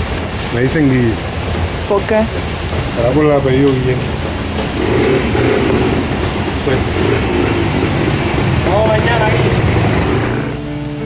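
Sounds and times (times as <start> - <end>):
large vehicle engine rumbling: 0.0 - 11.0
street noise: 0.0 - 11.0.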